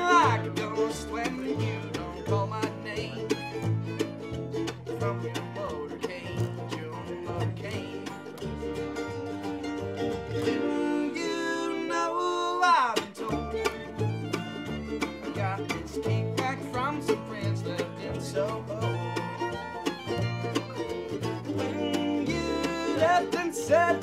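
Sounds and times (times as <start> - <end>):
acoustic string band playing: 0.0 - 24.0
double bass low notes: 0.0 - 24.0.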